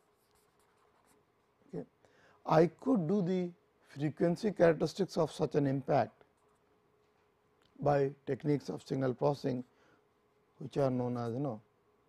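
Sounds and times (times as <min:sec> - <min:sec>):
marker scratching on paper: 0:00.0 - 0:01.2.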